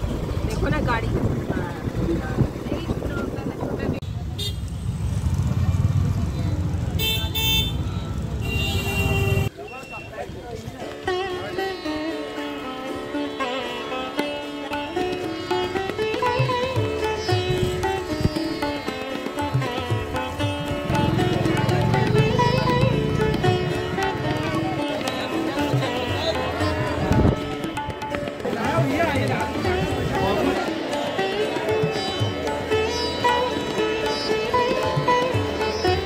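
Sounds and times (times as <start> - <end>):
street traffic rumble: 0.0 - 36.0
vehicle horn toots: 4.4 - 4.7, 7.0 - 10.0
instrumental background music: 10.8 - 36.0.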